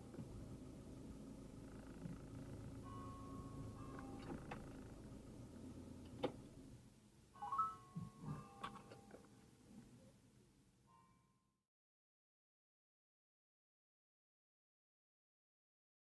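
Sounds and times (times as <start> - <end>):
van engine idling: 0.0 - 7.2.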